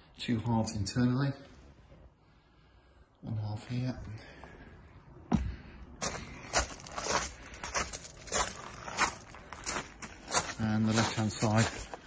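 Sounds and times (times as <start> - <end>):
footsteps on wood-chip path: 5.3 - 12.0.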